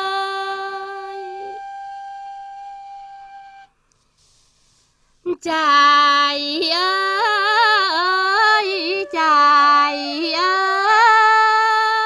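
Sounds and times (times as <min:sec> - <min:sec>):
folk singing with held notes: 0:05.3 - 0:12.0.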